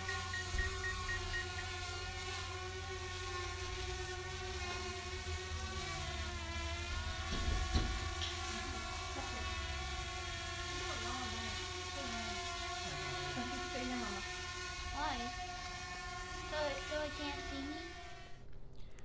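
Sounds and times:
drone propellers whining: 0.0s - 18.5s.

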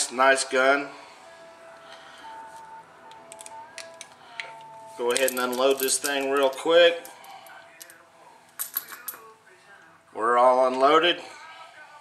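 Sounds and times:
metallic clicks of cartridges: 3.1s - 6.7s, 8.6s - 9.2s.

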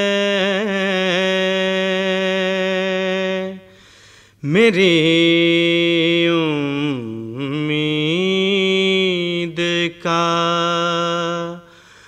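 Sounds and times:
man singing melismatic notes: 0.0s - 3.8s, 4.4s - 12.0s.

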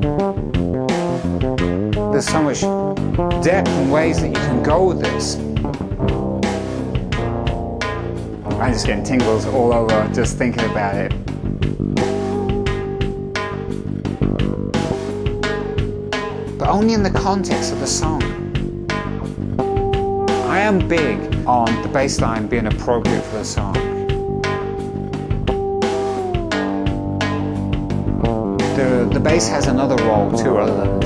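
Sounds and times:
fretless bass sliding notes: 0.0s - 31.0s.

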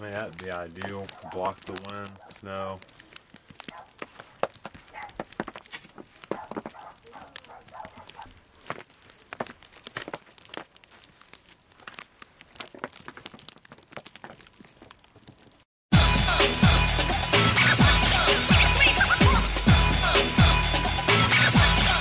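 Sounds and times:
snow crunching: 0.0s - 15.6s.

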